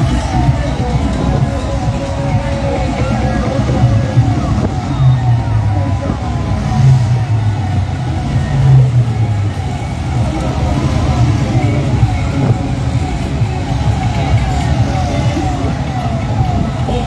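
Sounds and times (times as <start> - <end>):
crowd voices: 0.0 - 17.0
tractor engine running: 0.0 - 17.0.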